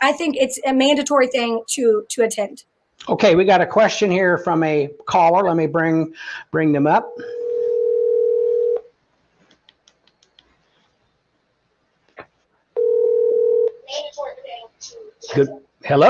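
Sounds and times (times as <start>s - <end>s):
telephone ringback tone: 7.2s - 8.9s, 12.8s - 13.8s.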